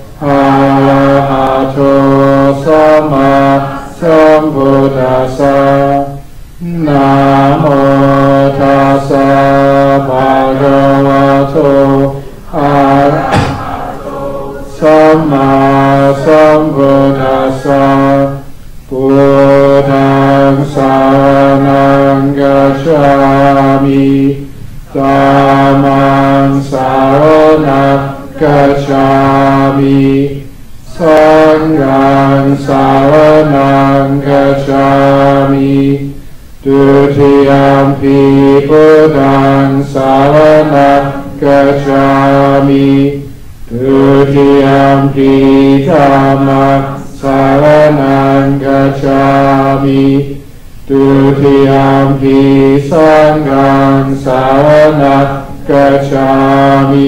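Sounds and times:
group chanting in monotone: 0.0 - 57.0.

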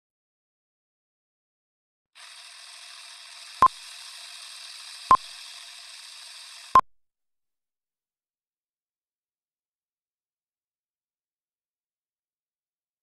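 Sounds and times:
film projector rattle with hiss: 2.2 - 6.8.

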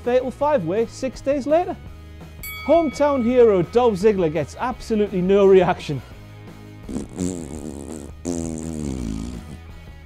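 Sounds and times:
background music: 0.0 - 10.0
man buzzing pursed lips: 6.8 - 9.9.

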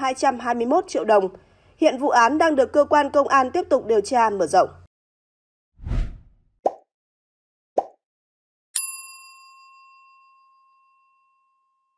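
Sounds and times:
bright bell-like ding: 8.8 - 11.9.

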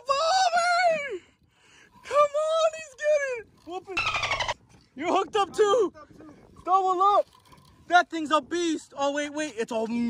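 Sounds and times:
pulsing buzzy sound: 4.0 - 4.6.

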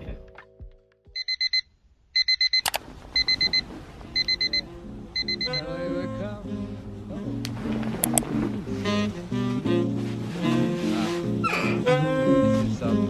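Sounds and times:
music: 0.0 - 1.2, 4.1 - 13.0
electronic alarm beeping: 1.2 - 3.6, 4.2 - 4.6, 5.2 - 5.7.

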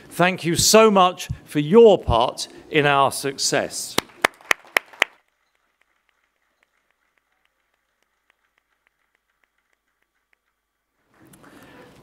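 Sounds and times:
hands clapping: 4.0 - 11.3.

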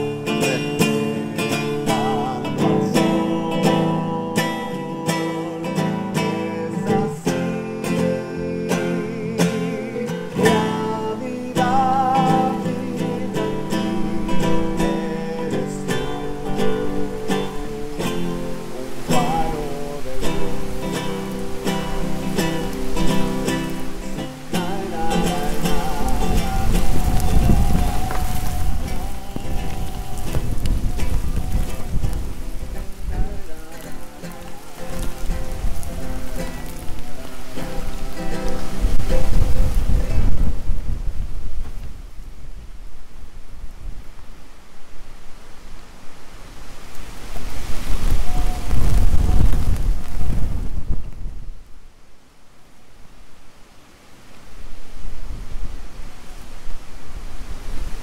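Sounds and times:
nylon-string guitar chords: 0.0 - 41.2
heavy rain: 0.0 - 58.0
thunder rumbles: 25.2 - 41.8.

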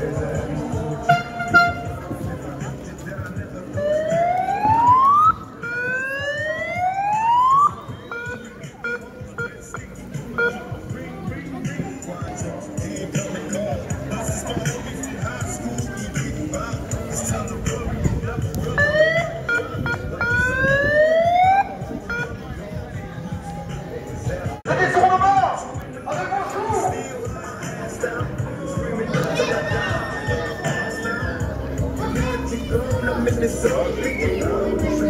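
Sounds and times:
crowd and street noise: 0.0 - 35.0
siren rising whoops: 3.8 - 8.0.

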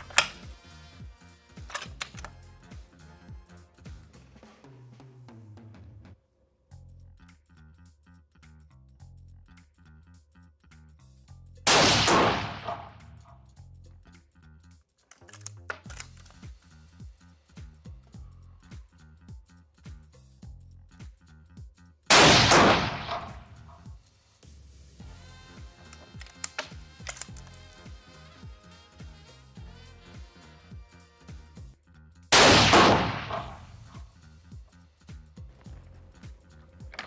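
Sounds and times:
rifle shots echoing: 0.0 - 0.5, 11.7 - 13.1, 22.1 - 23.7, 32.4 - 34.0
background music: 0.0 - 37.0.

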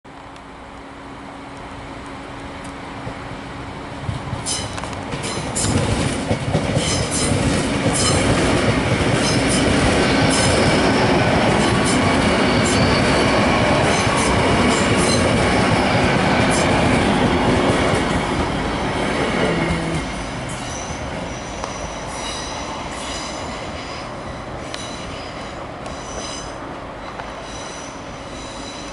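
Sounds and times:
train rumble: 0.1 - 28.9
wheels clicking over rail joints: 4.1 - 10.8.

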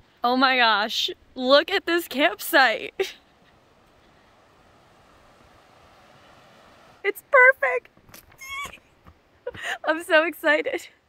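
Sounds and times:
fast-flowing river rushing: 3.4 - 7.0.

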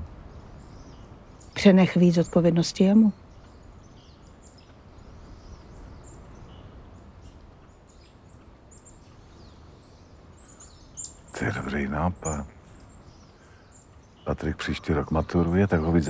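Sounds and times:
low background hiss: 0.0 - 16.0
small birds chirping: 0.0 - 16.0.

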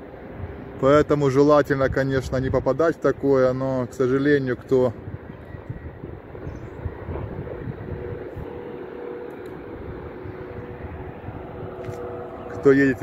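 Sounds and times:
distant highway traffic rumble: 0.0 - 13.0
faint steady drone: 0.0 - 13.0.

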